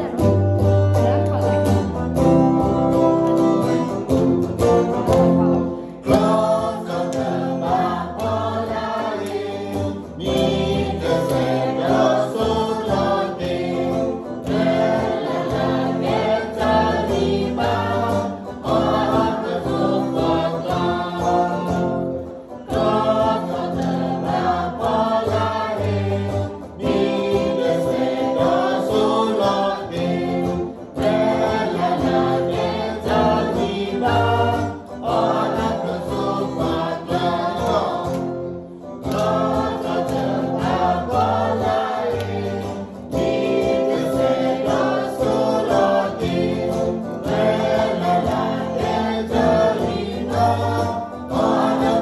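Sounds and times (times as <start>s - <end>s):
electric guitar accompaniment: 0.0s - 52.0s
women singing together: 6.0s - 52.0s.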